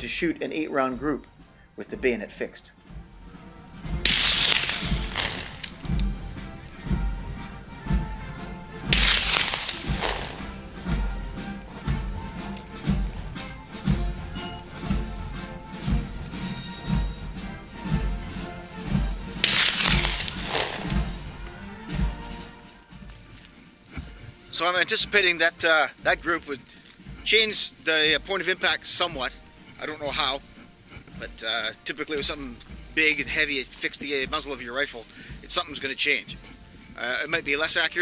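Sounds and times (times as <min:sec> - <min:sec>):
music with low drum beat: 0:00.0 - 0:38.0
rifle shots with ringing tail: 0:04.0 - 0:06.3, 0:08.9 - 0:11.2, 0:19.4 - 0:21.4.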